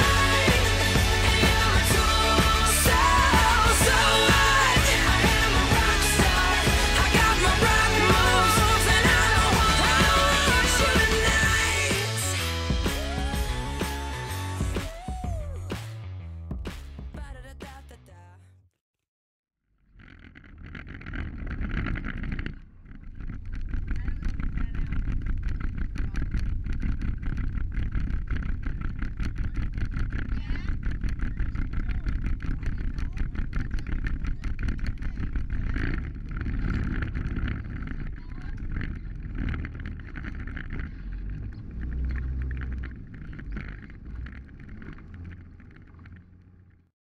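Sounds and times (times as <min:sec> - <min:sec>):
vehicle engine running: 0:00.0 - 0:15.9, 0:19.8 - 0:46.9.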